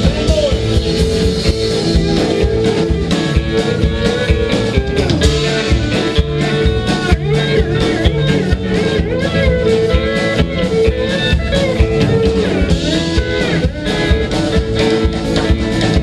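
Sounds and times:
drums: 0.0s - 16.0s
electric guitar: 0.0s - 16.0s
pedal steel guitar: 0.0s - 16.0s
upright bass: 0.0s - 16.0s.

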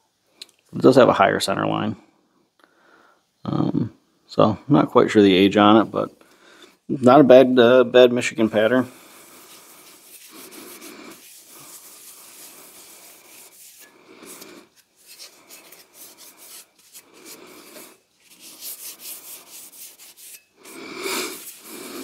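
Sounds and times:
rag rubbing on axe head: 8.5s - 22.0s.

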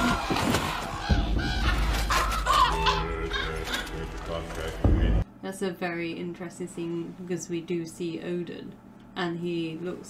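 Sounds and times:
ravens croaking: 0.0s - 5.2s.

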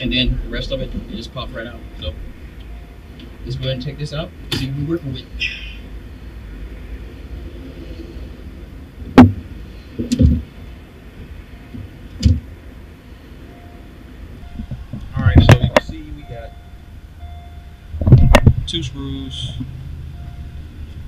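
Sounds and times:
low rumble: 0.0s - 21.0s.

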